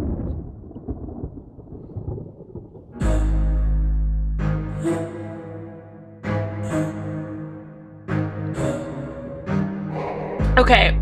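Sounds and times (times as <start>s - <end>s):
deep thunder rumbling: 0.0s - 4.0s, 9.9s - 11.0s.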